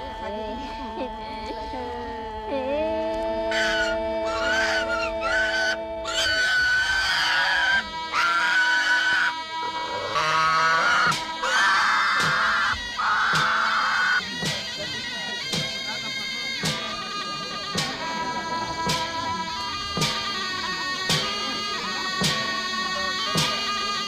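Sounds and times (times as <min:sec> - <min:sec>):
film score held notes: 0:00.0 - 0:24.0
pig squealing: 0:03.5 - 0:14.3.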